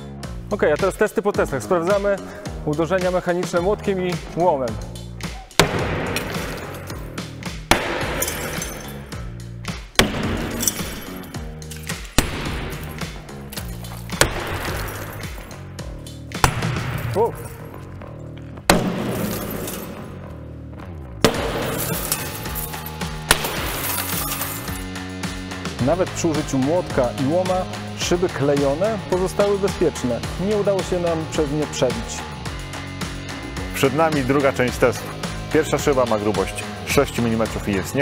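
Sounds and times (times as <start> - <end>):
background music: 0.0 - 38.0
glass cracking: 5.6 - 7.1, 7.7 - 9.1, 10.0 - 15.5, 18.7 - 20.1, 21.2 - 24.9
hammer striking glass: 5.6 - 7.1, 7.7 - 9.2, 10.0 - 15.5, 18.7 - 20.0, 21.2 - 22.7, 23.3 - 24.7.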